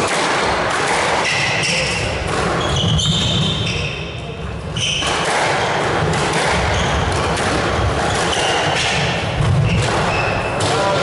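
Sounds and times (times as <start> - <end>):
squash ball strikes: 0.0 - 3.9, 4.8 - 11.0
murmur of the hall: 0.0 - 11.0
shoe squeaks on court floor: 1.2 - 5.3, 6.6 - 10.6.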